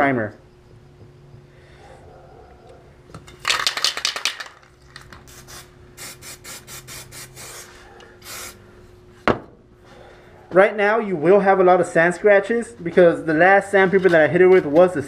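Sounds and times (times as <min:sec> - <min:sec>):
aerosol can rattling: 0:03.3 - 0:07.6.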